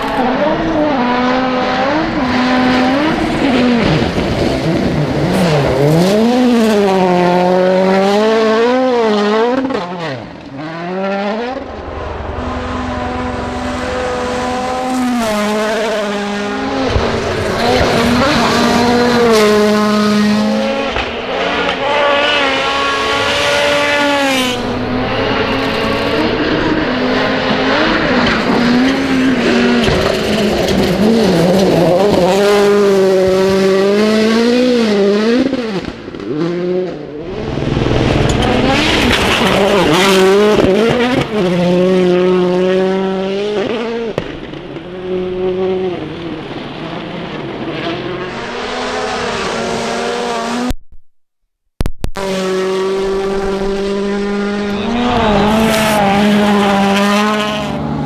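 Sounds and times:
rally car engines revving: 0.0s - 50.7s, 52.2s - 58.0s.

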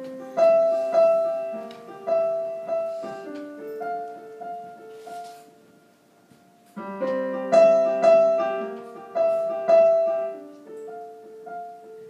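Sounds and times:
electronic keyboard piano chords: 6.8s - 12.0s.

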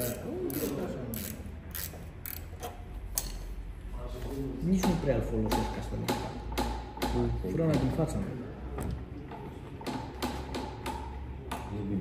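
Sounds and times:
ratchet wrench clicking: 0.0s - 3.4s.

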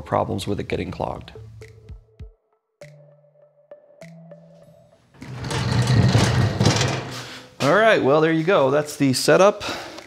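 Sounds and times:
faint background music: 0.0s - 2.2s, 4.0s - 10.0s.

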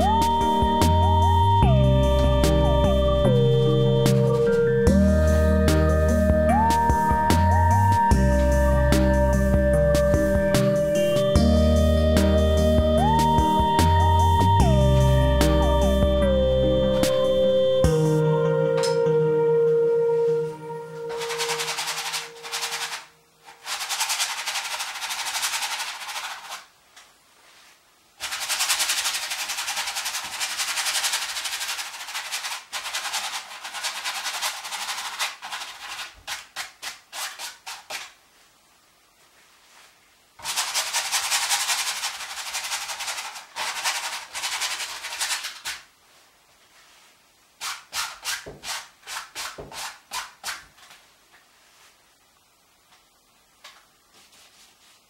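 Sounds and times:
paintbrush scrubbing canvas: 21.1s - 26.7s, 27.5s - 38.2s, 39.6s - 45.9s, 54.1s - 55.0s.

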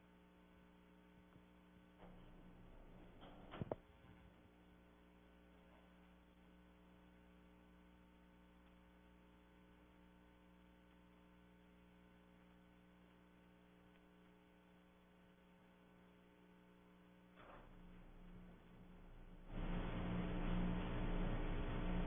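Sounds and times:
electrical mains hum: 0.0s - 22.0s.

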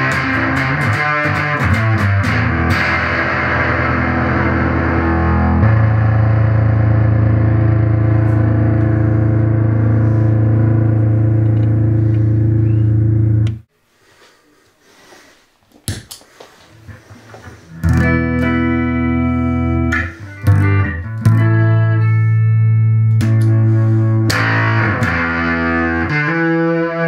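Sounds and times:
fuzz electric guitar notes: 0.0s - 13.7s, 17.8s - 27.0s
sustained fuzz guitar tone: 0.0s - 13.7s, 17.7s - 27.0s.

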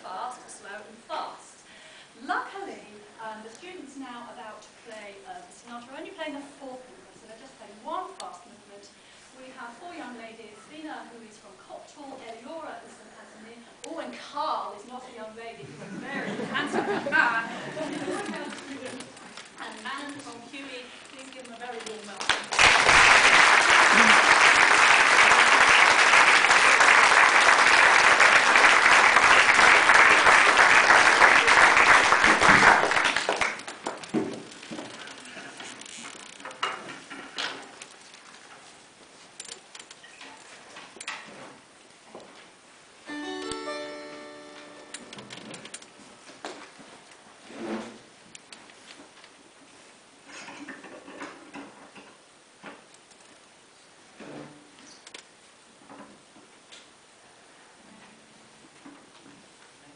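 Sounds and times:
small rustles: 17.8s - 22.3s, 33.7s - 42.6s
audience applauding: 22.2s - 34.1s.

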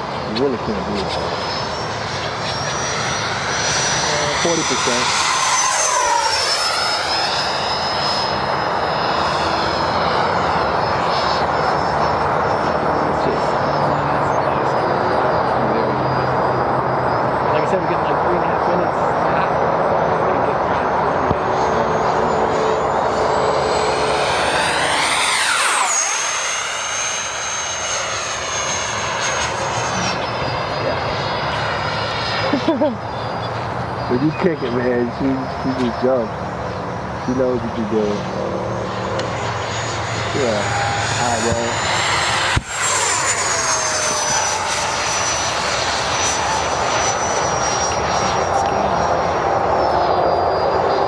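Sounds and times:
electric jet fan whine: 0.0s - 51.0s
jet swoosh passing: 0.0s - 51.0s
rushing air: 38.2s - 48.3s.

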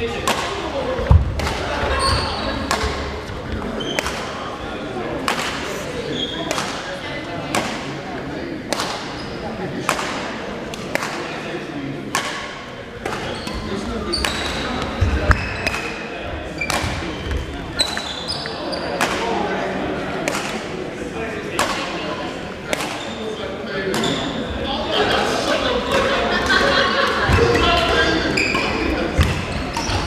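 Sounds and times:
rackets hitting shuttlecock: 0.1s - 4.4s, 5.2s - 5.7s, 6.4s - 6.8s, 7.5s - 8.0s, 8.6s - 9.2s, 9.8s - 11.4s, 12.1s - 19.4s, 20.2s - 20.8s, 21.5s - 23.2s.

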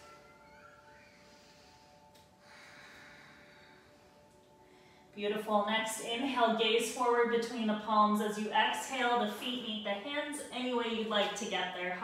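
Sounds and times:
faint background music: 0.0s - 12.0s
soft breathing through nose: 1.0s - 5.2s.

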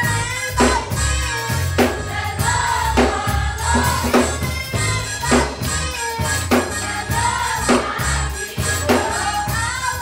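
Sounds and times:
church band drums: 0.0s - 10.0s
gospel choir singing: 0.0s - 10.0s
sustained bass notes: 0.0s - 10.0s.

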